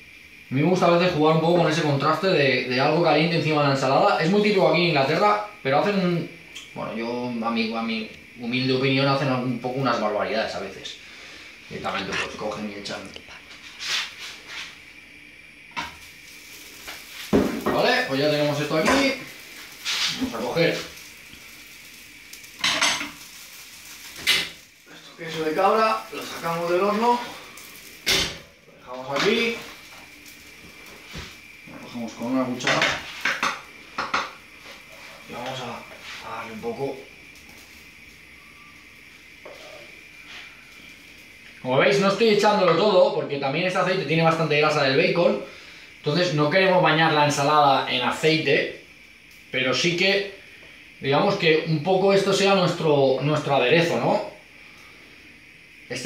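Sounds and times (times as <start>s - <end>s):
faint steady hiss: 0.0s - 56.0s
oil drizzling over leaves: 16.0s - 34.0s.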